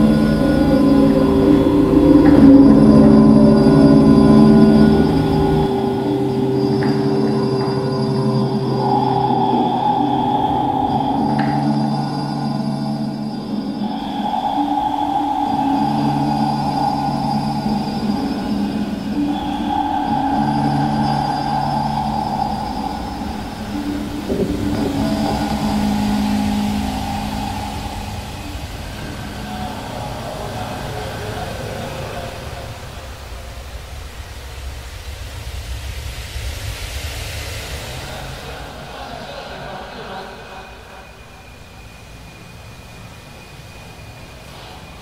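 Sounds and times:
hissing noise wash: 0:00.0 - 0:45.0
layered drone tones: 0:00.0 - 0:45.0.

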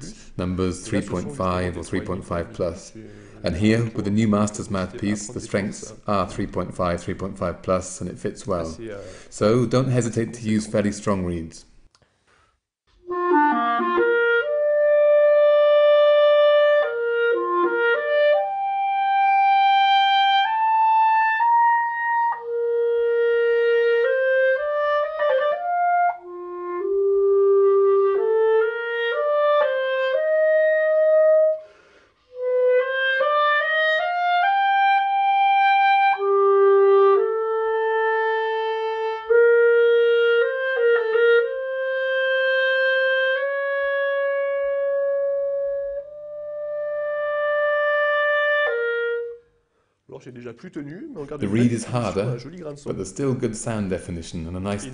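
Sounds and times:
player taking a breath: 0:00.1 - 0:00.4, 0:03.0 - 0:03.5, 0:08.9 - 0:09.4, 0:12.0 - 0:12.7, 0:31.6 - 0:32.4, 0:49.6 - 0:50.1
solo clarinet melody: 0:13.0 - 0:49.6.

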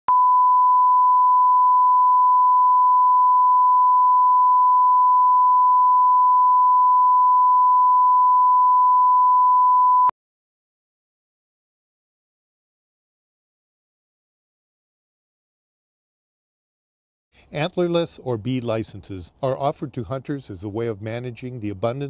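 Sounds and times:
steady test tone beep: 0:00.0 - 0:10.1.

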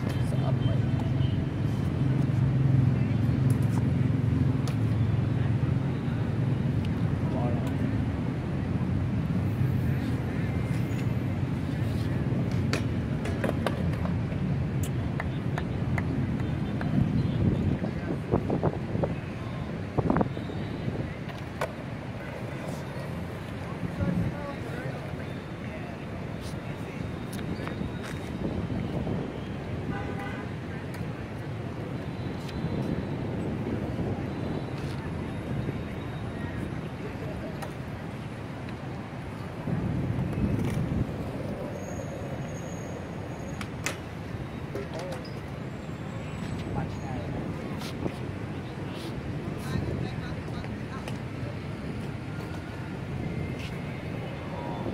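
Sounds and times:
city traffic rumble: 0:00.0 - 0:54.9
skateboard wheels clacking: 0:12.4 - 0:17.0.

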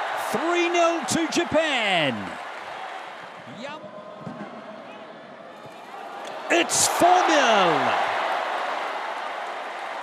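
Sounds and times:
stadium crowd cheering and applauding: 0:00.0 - 0:03.9, 0:05.6 - 0:10.0.

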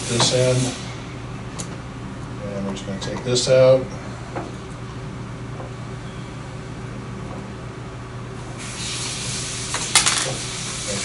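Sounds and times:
steady low hum: 0:00.0 - 0:08.6.

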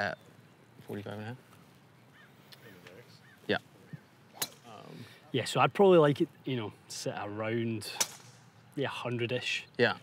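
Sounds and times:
faint bird calling: 0:01.6 - 0:05.2.

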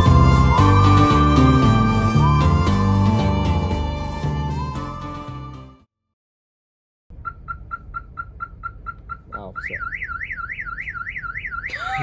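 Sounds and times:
low engine and road rumble: 0:00.0 - 0:05.8, 0:07.1 - 0:12.0
car alarm beeps and wail: 0:07.1 - 0:12.0.

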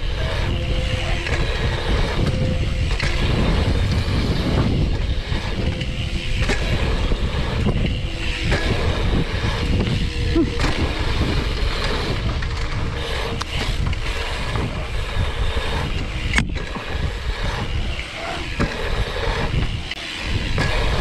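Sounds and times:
bike tyres rolling on dirt: 0:00.0 - 0:21.0
wind buffeting microphone: 0:00.0 - 0:21.0.

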